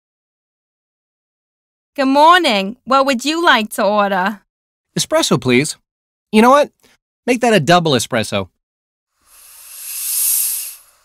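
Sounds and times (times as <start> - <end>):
espresso machine steam hiss: 9.2 - 11.0.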